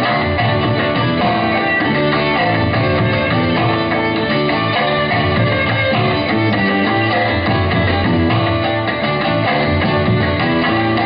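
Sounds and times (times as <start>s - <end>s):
guitar melody: 0.0s - 11.0s
live band playing: 0.0s - 11.0s
violin melody: 0.0s - 11.0s.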